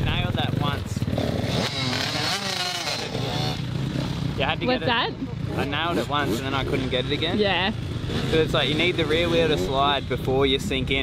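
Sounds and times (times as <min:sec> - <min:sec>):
motocross bike engine running: 0:00.0 - 0:11.0.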